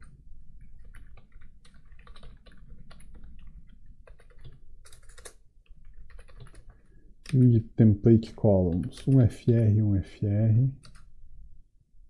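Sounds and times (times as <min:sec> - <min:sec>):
keyboard typing clicks: 0:00.7 - 0:07.5.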